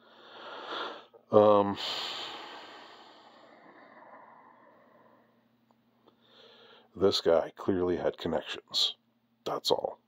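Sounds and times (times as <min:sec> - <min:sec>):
man breathing out: 0:00.0 - 0:05.4, 0:06.1 - 0:06.9.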